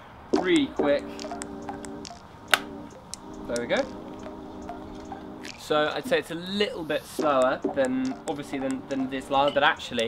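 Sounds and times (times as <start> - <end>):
music with sustained chords: 0.4 - 6.2.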